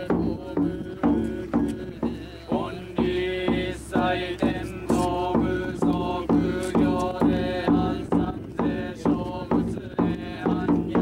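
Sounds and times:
several voices chanting: 0.0s - 11.0s.

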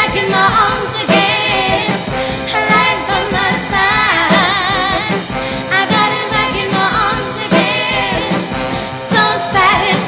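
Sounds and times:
female vocal group singing pop: 0.0s - 10.0s.

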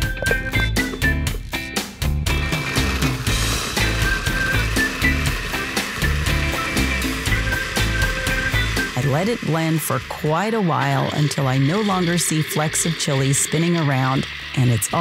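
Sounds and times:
background music with steady beat: 0.0s - 9.6s
blender running: 2.3s - 15.0s.

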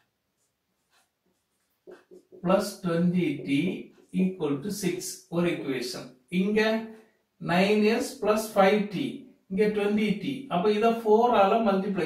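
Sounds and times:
marker pen on whiteboard: 0.0s - 12.0s.

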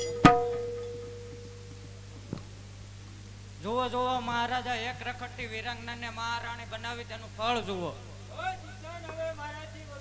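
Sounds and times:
hand drum ringing: 0.0s - 1.8s
low mains hum: 0.0s - 10.0s.

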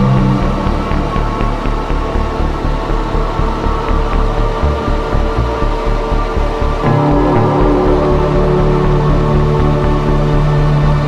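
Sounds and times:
pulsing synth bass line: 0.0s - 11.0s
sustained synth chords: 0.0s - 11.0s.

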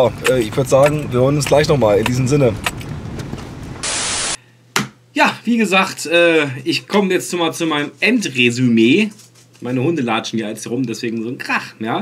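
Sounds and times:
car cabin road rumble: 0.0s - 3.8s
static-like white noise burst: 0.0s - 4.4s.

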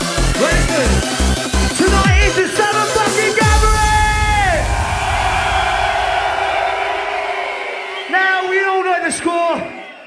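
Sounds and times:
hardcore dance music: 0.0s - 8.0s.

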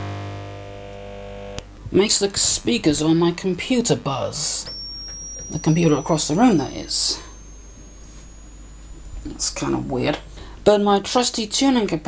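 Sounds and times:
speakers buzzing with hum: 0.0s - 10.7s.

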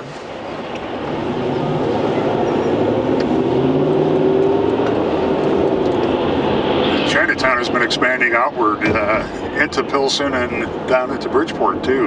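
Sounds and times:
car engine accelerating: 0.0s - 12.0s
road noise inside car: 0.0s - 12.0s.

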